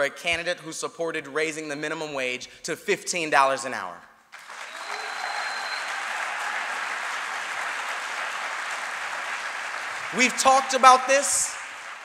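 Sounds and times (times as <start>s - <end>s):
audience applauding: 4.3s - 12.0s.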